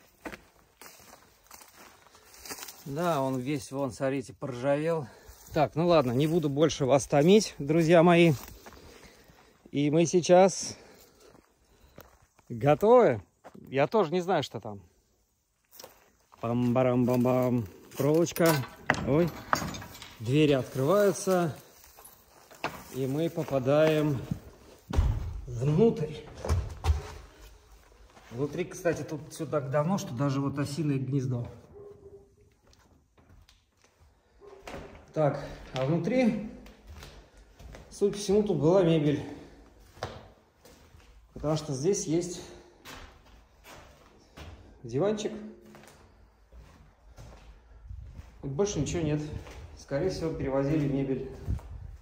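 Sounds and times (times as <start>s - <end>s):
footsteps through grass: 0.0s - 3.6s, 5.1s - 9.5s, 20.5s - 24.9s.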